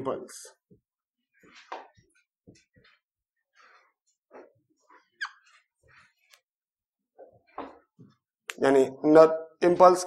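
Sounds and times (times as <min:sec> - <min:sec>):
whiteboard marker squeaking: 0:03.6 - 0:06.5.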